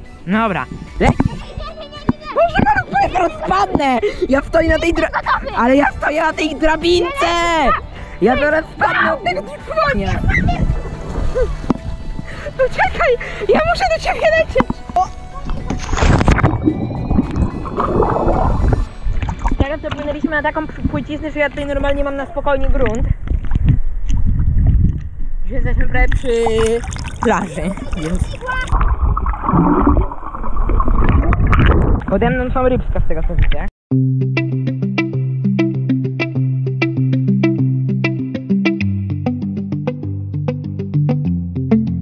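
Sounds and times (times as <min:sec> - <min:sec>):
background music: 0:00.0 - 0:22.3, 0:34.0 - 0:42.0
underwater water gurgling: 0:15.6 - 0:21.0, 0:26.1 - 0:32.3.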